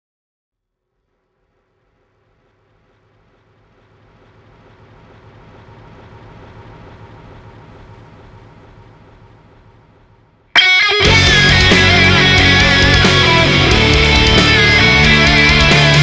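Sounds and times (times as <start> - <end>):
low rumbling drone: 0.8 - 16.0
faint steady tones: 1.0 - 16.0.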